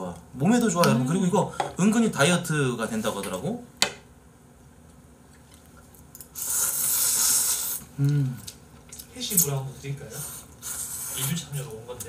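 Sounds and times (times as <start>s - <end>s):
person slurping noodles: 6.4s - 8.5s.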